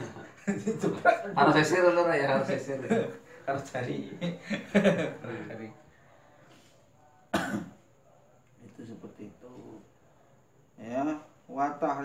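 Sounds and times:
man coughing: 7.3s - 7.8s.

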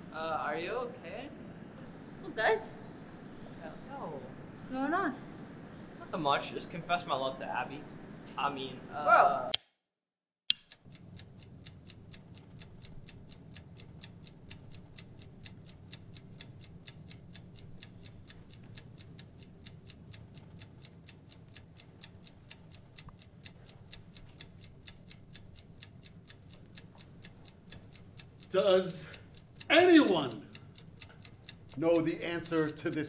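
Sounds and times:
low room hum: 0.0s - 9.5s, 10.7s - 33.0s
clock ticking: 10.5s - 33.0s.

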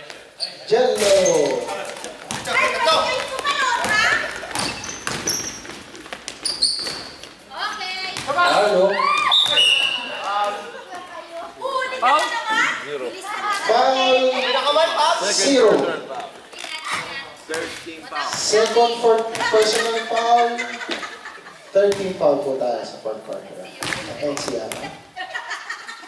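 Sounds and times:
players shouting: 1.1s - 5.0s, 7.5s - 16.1s
basketball bouncing on court: 2.2s - 7.3s, 7.9s - 8.6s, 16.9s - 19.8s, 23.7s - 25.0s.

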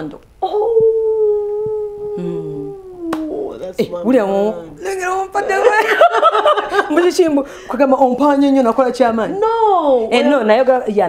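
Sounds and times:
woman's drawn-out ooh: 0.4s - 3.3s.

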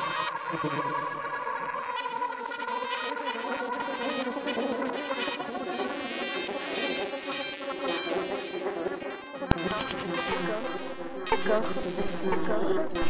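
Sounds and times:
stuttering glitch electronic music: 5.1s - 13.0s.

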